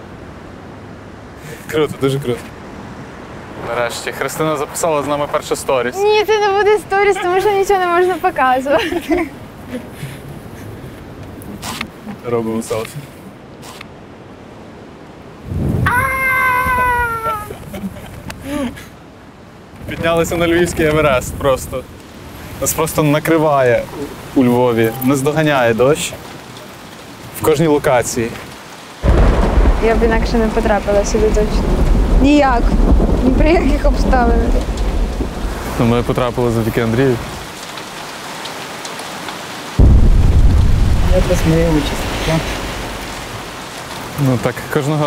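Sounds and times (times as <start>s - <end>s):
light rain hissing: 1.2s - 45.0s
faint raindrop ticks: 8.9s - 13.9s, 19.7s - 28.8s, 32.6s - 39.8s, 41.9s - 45.0s
strong wind buffeting microphone: 15.3s - 19.0s, 19.6s - 23.0s, 29.0s - 37.5s, 39.8s - 44.2s.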